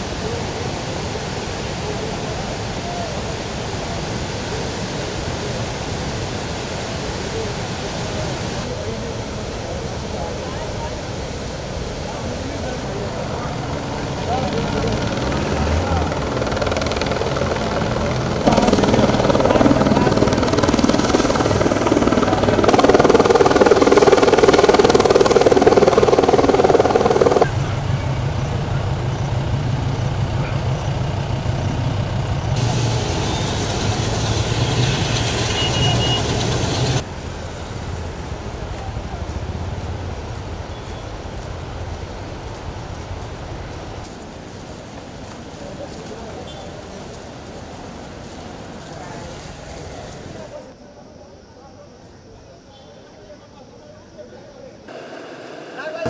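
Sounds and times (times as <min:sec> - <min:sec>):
river in flood rushing: 0:00.0 - 0:50.8
helicopter rotor beating: 0:12.2 - 0:37.1, 0:54.9 - 0:56.0.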